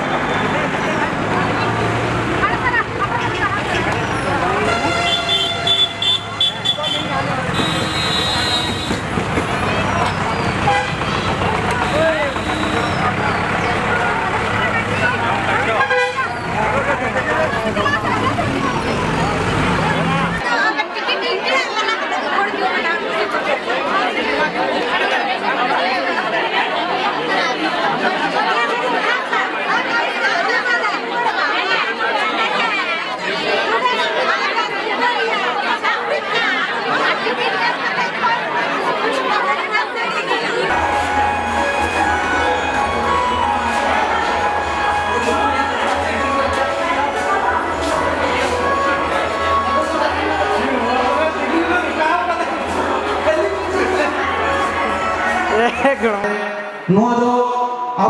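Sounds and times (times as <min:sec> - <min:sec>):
low traffic rumble: 0:00.0 - 0:20.4
crowd babble: 0:00.0 - 0:58.0.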